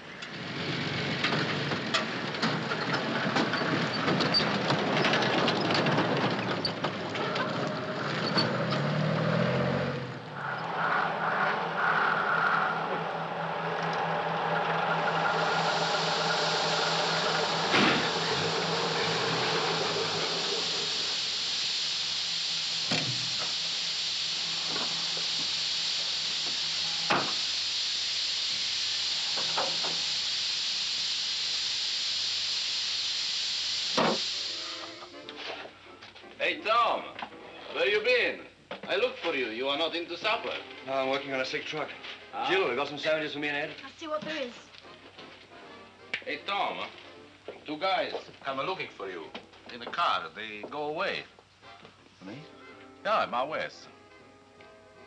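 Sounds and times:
lorry engine running: 0:00.0 - 0:35.2
steam hissing: 0:00.0 - 0:35.9.

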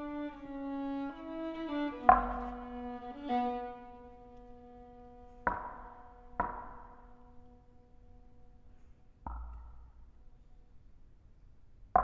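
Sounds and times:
low held string note: 0:01.2 - 0:08.8
sharp percussive string knocks: 0:02.0 - 0:02.7, 0:05.4 - 0:07.2, 0:09.2 - 0:09.9.

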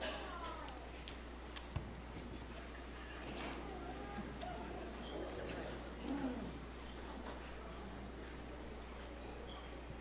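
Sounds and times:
low steady hum: 0:00.0 - 0:10.0
faint murmuring voices: 0:02.1 - 0:10.0.

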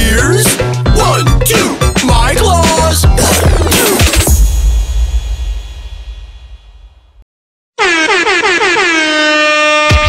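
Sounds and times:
air horn sound effect: 0:07.8 - 0:10.0.

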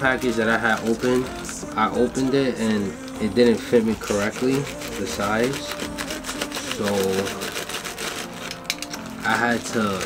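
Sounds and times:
scissors cutting plastic: 0:00.0 - 0:10.0.

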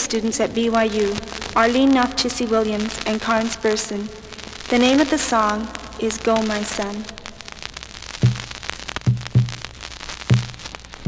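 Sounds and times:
vinyl crackle and hiss: 0:00.0 - 0:11.0
low drum beat: 0:08.2 - 0:10.7.

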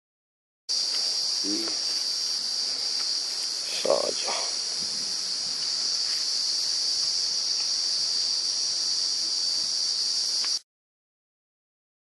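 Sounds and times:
high-pitched insect chorus: 0:00.7 - 0:10.6.

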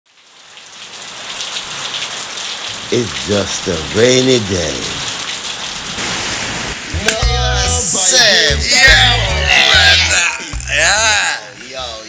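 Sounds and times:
steady rain: 0:00.1 - 0:07.2.

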